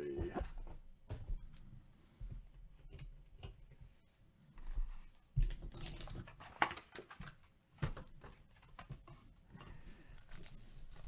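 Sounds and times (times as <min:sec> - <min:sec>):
rustling: 0:09.6 - 0:11.0.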